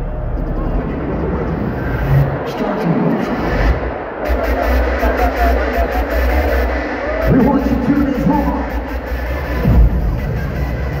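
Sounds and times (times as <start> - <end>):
hardstyle music over sound system: 0.0 - 11.0.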